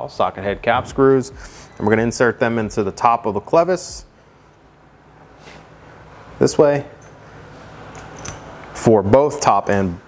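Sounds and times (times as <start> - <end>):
small metal tink: 8.0 - 8.6.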